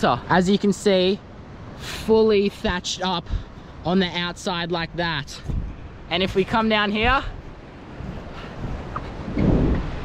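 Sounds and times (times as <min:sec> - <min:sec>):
wind buffeting microphone: 0:04.8 - 0:10.0.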